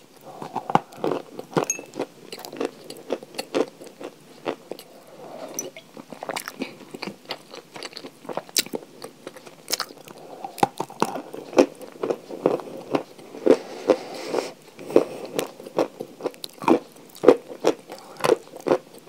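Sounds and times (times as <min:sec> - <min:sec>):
crunching and chewing chalk: 0:00.1 - 0:05.5, 0:06.1 - 0:19.0.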